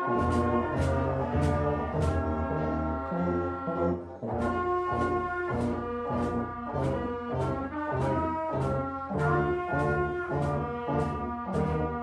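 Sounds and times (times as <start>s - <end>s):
wind band playing a march: 0.0s - 12.0s.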